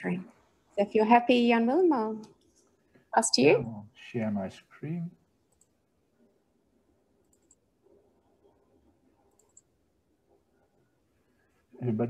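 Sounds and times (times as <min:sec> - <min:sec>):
faint computer mouse clicks: 0:07.2 - 0:07.6, 0:09.3 - 0:09.7.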